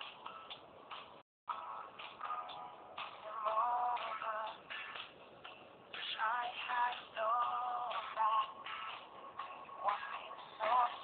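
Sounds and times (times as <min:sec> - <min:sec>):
song from small phone speaker: 0:00.0 - 0:11.0.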